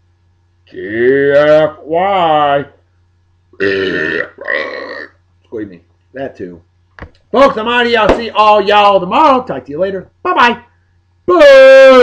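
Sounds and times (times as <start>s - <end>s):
man burping loudly: 0.7s - 1.4s, 3.6s - 5.2s.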